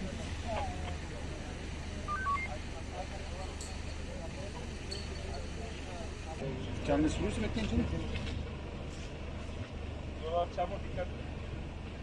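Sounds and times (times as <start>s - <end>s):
voices murmuring: 0.0s - 8.2s
short electronic beeps: 2.1s - 2.6s.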